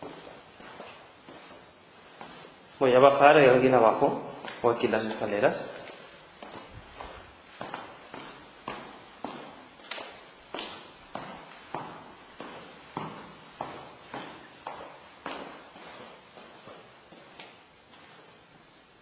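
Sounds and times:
footsteps on staircase: 0.0 - 18.8.

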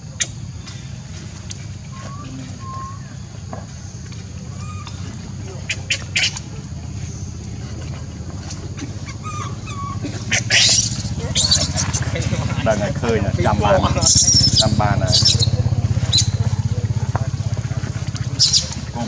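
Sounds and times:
steady low hum: 0.0 - 19.0
baby monkey squeaky calls: 9.1 - 12.1, 13.8 - 16.4, 18.4 - 18.8.

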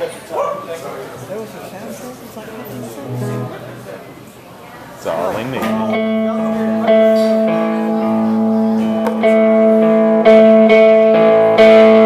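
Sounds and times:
voices: 0.0 - 10.0
electric guitar low notes: 5.6 - 12.0.

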